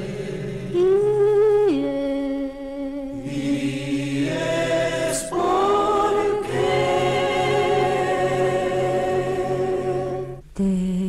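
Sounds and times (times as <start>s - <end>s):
choir singing held notes: 0.0s - 1.0s, 3.1s - 10.4s.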